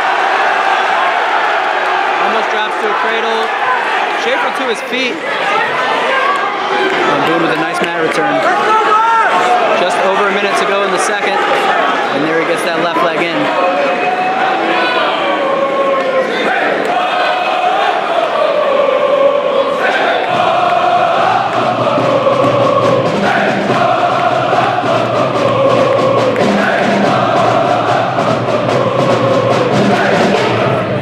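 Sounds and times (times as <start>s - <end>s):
crowd chanting in unison: 0.0s - 31.0s
drumline beat: 20.2s - 31.0s.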